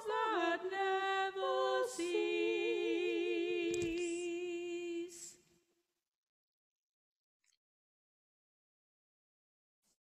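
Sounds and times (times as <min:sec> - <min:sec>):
two women singing: 0:00.0 - 0:05.5.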